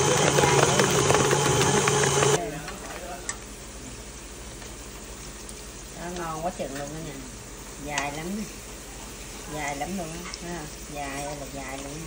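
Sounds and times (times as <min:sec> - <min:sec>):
stand mixer motor: 0:00.0 - 0:02.4
fish cakes sizzling in oil: 0:03.5 - 0:12.0.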